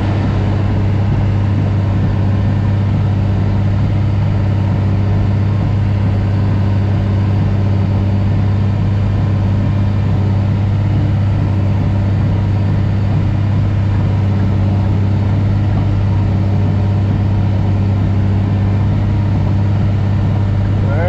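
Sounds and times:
diesel engine droning: 0:00.0 - 0:21.0.

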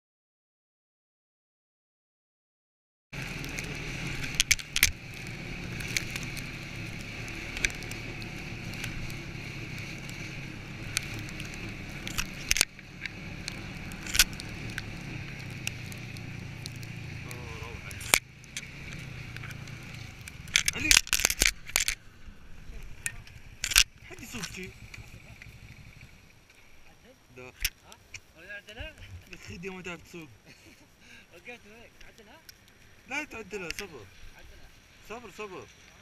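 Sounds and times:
snowmobile engine drone: 0:03.2 - 0:26.5
sharp clicks and knocks: 0:10.8 - 0:16.9, 0:17.9 - 0:22.0.

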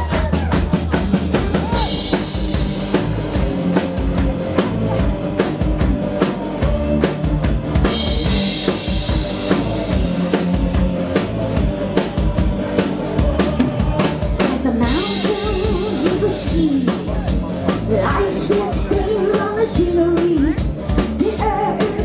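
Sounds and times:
rock band playing: 0:00.0 - 0:22.0.

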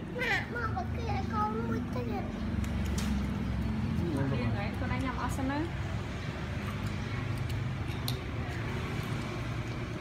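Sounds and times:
children talking and calling out: 0:00.0 - 0:02.9.

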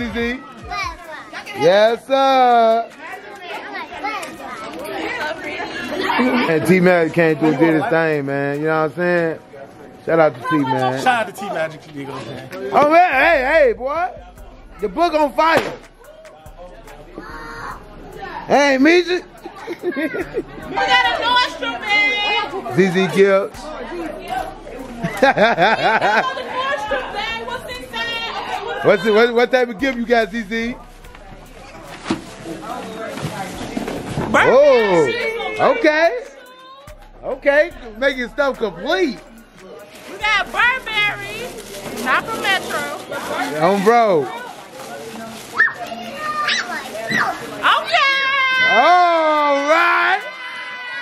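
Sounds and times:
people chattering: 0:00.0 - 0:51.0
children's voices: 0:00.4 - 0:01.7, 0:02.9 - 0:06.6, 0:17.0 - 0:18.5, 0:19.4 - 0:22.7, 0:23.7 - 0:28.9, 0:33.8 - 0:37.0, 0:44.2 - 0:48.8.

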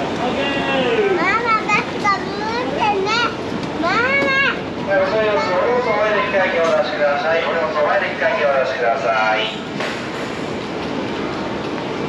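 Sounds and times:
steady background noise: 0:00.0 - 0:12.0
small children talking and calling: 0:00.7 - 0:07.8.

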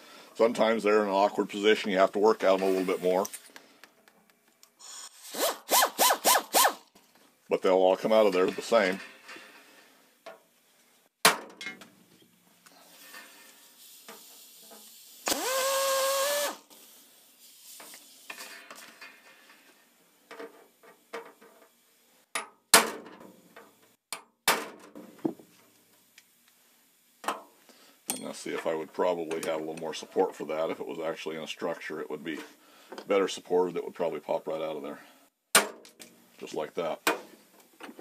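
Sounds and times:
air drill drilling rivet: 0:04.8 - 0:06.8, 0:15.2 - 0:16.7.

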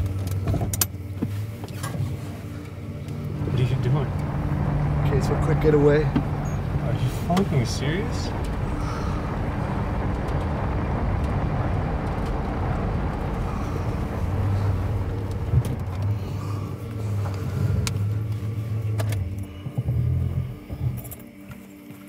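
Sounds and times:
truck engine and road rumble: 0:00.0 - 0:21.4.

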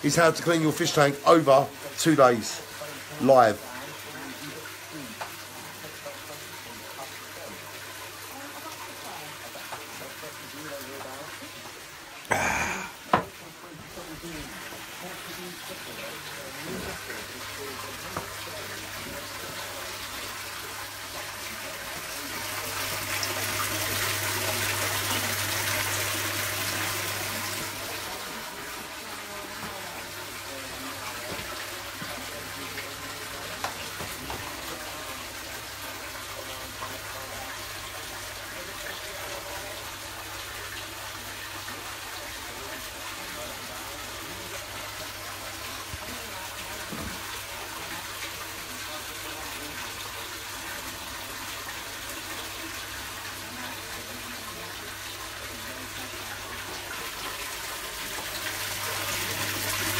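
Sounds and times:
water pouring from a hose: 0:00.0 - 0:59.9.

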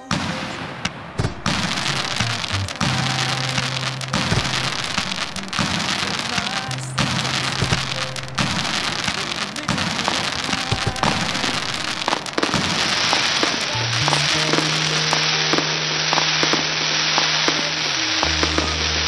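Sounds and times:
fireworks crackling and popping: 0:00.0 - 0:19.0
music: 0:00.0 - 0:19.0.

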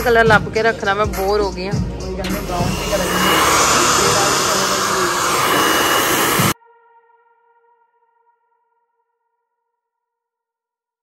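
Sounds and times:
hair dryer blowing: 0:02.2 - 0:06.6.

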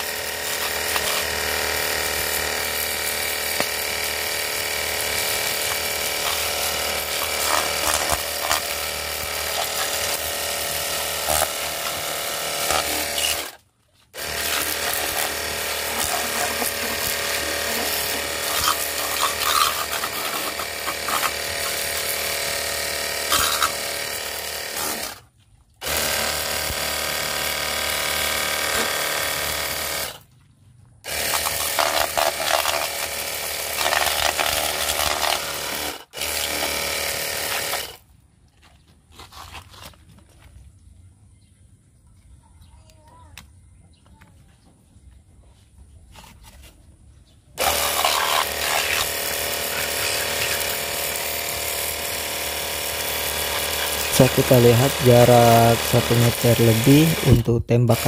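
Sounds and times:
pressure washer pump whining: 0:00.0 - 0:25.2, 0:25.8 - 0:30.3, 0:31.0 - 0:38.0, 0:47.6 - 0:58.0
water jet hissing: 0:14.2 - 0:22.4, 0:47.6 - 0:58.0.

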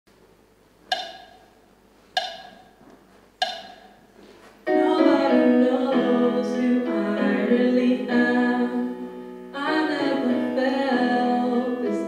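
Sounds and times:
keyboard note ringing: 0:00.9 - 0:01.5, 0:02.2 - 0:02.8.

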